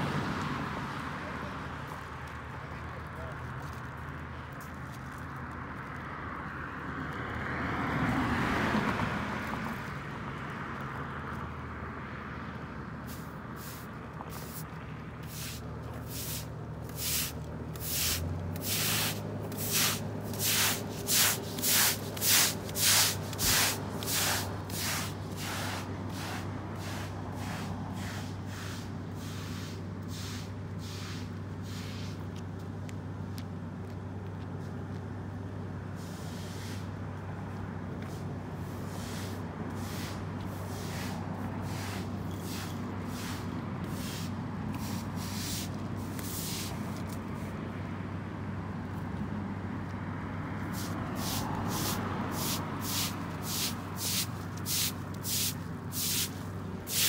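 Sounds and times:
road traffic hum: 0:00.0 - 0:57.0
vehicle passing: 0:00.0 - 0:57.0
push broom sweeping pavement: 0:13.0 - 0:32.7, 0:35.8 - 0:37.2, 0:37.9 - 0:47.7, 0:50.6 - 0:57.0.

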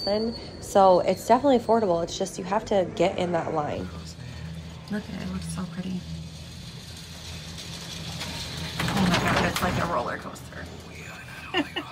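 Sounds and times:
cable car mechanical hum: 0:00.0 - 0:11.9.

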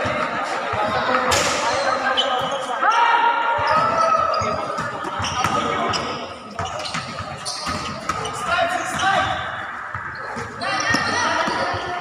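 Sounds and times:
sneakers squeaking: 0:00.0 - 0:12.0
basketball bouncing on court: 0:03.6 - 0:12.0.

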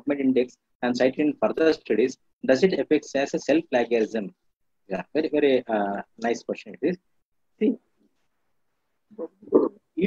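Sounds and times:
man speaking over a video call: 0:00.0 - 0:10.0.

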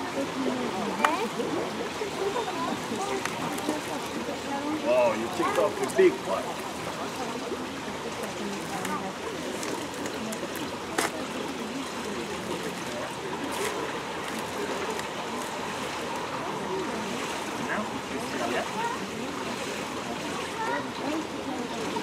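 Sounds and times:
faint background voices: 0:00.0 - 0:22.0
running water rushing: 0:00.0 - 0:22.0.

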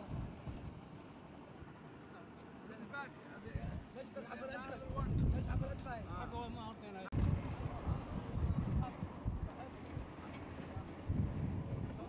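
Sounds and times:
vehicle engine and road rumble: 0:07.1 - 0:12.0.

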